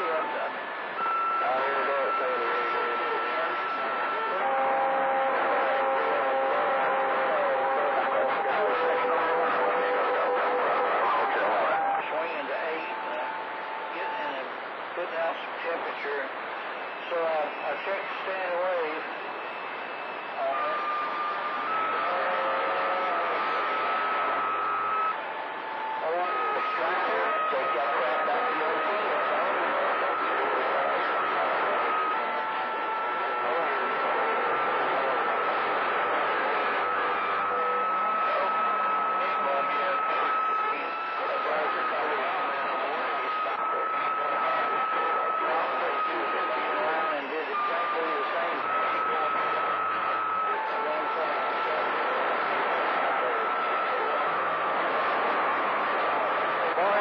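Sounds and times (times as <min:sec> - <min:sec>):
faint unintelligible voices: 0:00.0 - 0:57.0
radio static: 0:00.0 - 0:57.0.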